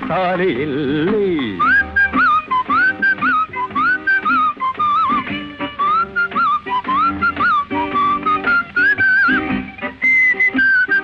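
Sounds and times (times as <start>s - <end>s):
whistled melody: 1.4s - 11.0s.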